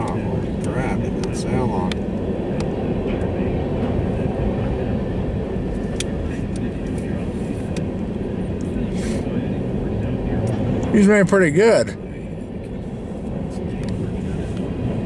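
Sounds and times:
diesel locomotives rumbling: 0:00.0 - 0:15.0.

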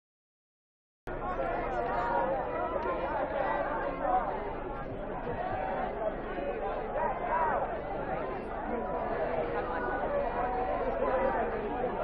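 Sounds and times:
crowd chatter: 0:01.1 - 0:12.0.

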